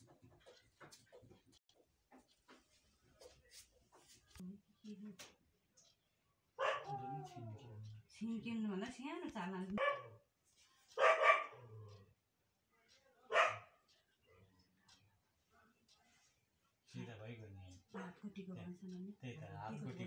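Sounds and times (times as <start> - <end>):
dog barking: 6.6 - 7.4, 9.8 - 10.3, 10.9 - 12.0, 13.3 - 13.8.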